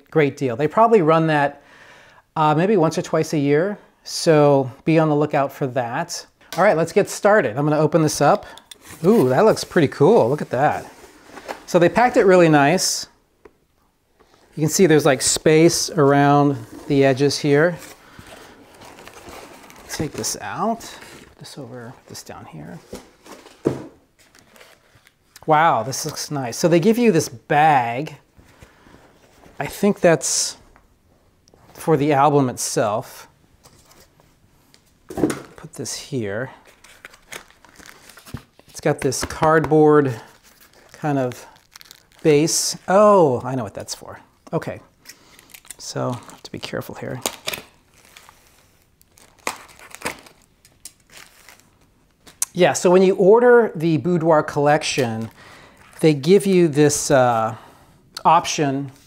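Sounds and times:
packaging rustling: 0:08.7 - 0:12.4, 0:16.5 - 0:25.4, 0:36.6 - 0:42.9, 0:45.1 - 0:52.4
plastic wrapping crinkling and tearing: 0:36.6 - 0:38.9, 0:40.1 - 0:42.8, 0:45.3 - 0:52.4.

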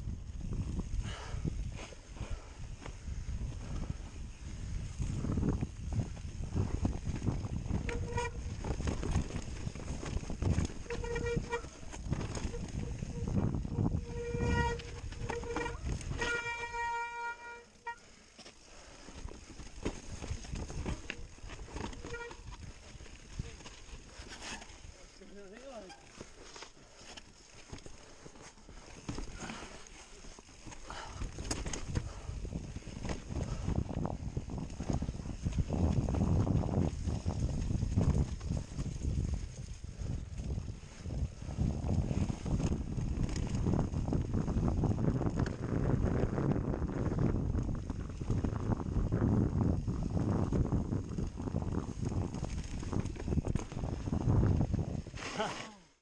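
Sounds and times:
wind buffeting microphone: 0:00.0 - 0:17.6, 0:30.8 - 0:55.2
bike rattling over bumps: 0:00.0 - 0:55.5
tyres rolling over dirt and rocks: 0:05.0 - 0:17.6, 0:18.3 - 0:55.8.

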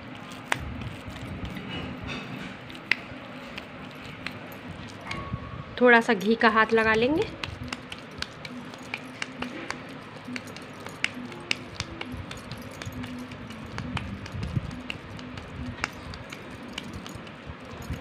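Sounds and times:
hands patting minced meat in bowl: 0:00.0 - 0:01.7, 0:02.5 - 0:05.0, 0:06.5 - 0:18.0.

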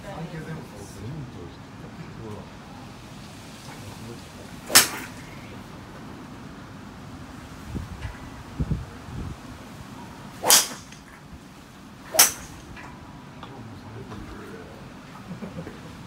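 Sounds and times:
golf clubs striking balls: 0:04.6 - 0:05.4, 0:10.4 - 0:11.3, 0:12.0 - 0:13.5.

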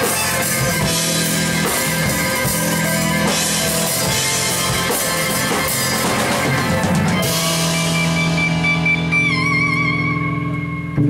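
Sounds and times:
live rock band playing: 0:00.0 - 0:11.0
held chord with vibrato note: 0:00.3 - 0:11.0.

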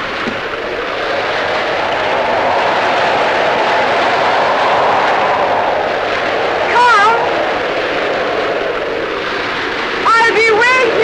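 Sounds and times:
rough sea waves: 0:00.0 - 0:11.0
wind: 0:00.0 - 0:11.0.

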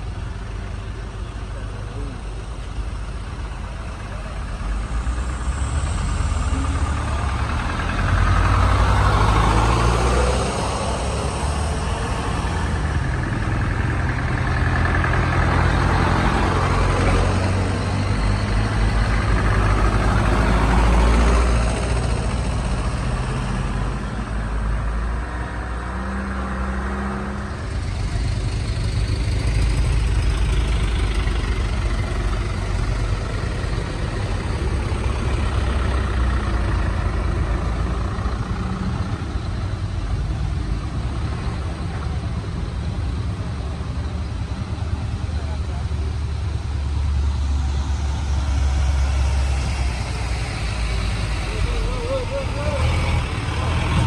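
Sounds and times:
diesel truck engines under load: 0:00.0 - 0:54.0.

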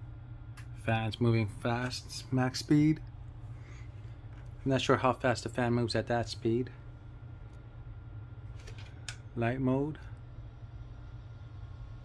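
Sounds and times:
cooling fan humming: 0:00.0 - 0:12.0.

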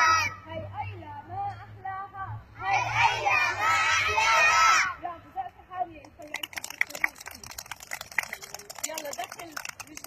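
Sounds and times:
children chattering and calling out: 0:00.0 - 0:00.6.

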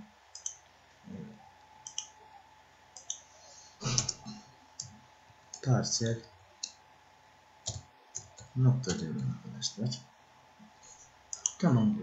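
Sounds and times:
computer mouse clicking: 0:00.3 - 0:00.6, 0:01.8 - 0:02.2, 0:02.9 - 0:03.3, 0:04.8 - 0:05.7, 0:07.6 - 0:09.3, 0:11.3 - 0:11.6.

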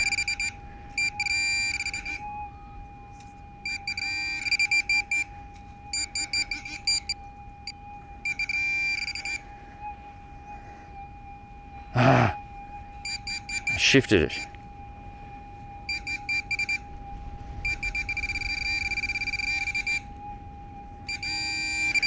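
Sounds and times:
metal detector steady tone: 0:00.0 - 0:02.2, 0:03.1 - 0:09.5, 0:13.0 - 0:14.6, 0:15.8 - 0:16.9, 0:17.6 - 0:20.1, 0:21.0 - 0:22.0
pinpointer beeping in rapid pulses: 0:00.0 - 0:02.3, 0:03.6 - 0:05.3, 0:05.9 - 0:09.4, 0:13.0 - 0:14.5, 0:15.9 - 0:16.9, 0:17.6 - 0:20.1, 0:21.1 - 0:22.0.

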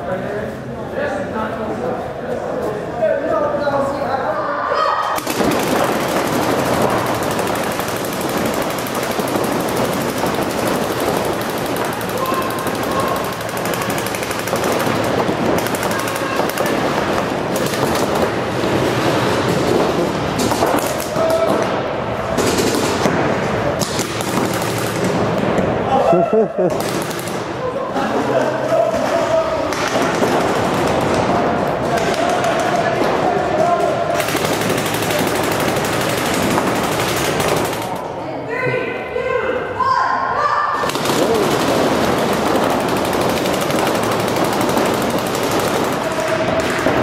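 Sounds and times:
paintball markers firing rapidly: 0:05.2 - 0:25.7, 0:26.6 - 0:27.6, 0:29.7 - 0:38.1, 0:40.8 - 0:47.0.

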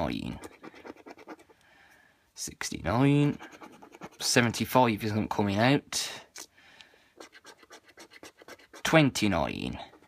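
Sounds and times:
coin scratching a scratchcard: 0:00.2 - 0:01.5, 0:03.2 - 0:04.4, 0:07.2 - 0:09.1.

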